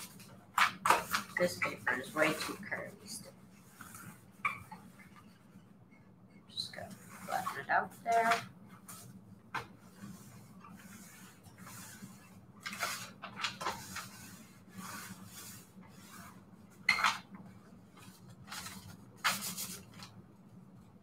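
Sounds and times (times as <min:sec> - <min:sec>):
iron rubbing over paper: 0:00.0 - 0:05.6, 0:06.6 - 0:20.1
paper rustling: 0:06.9 - 0:20.3.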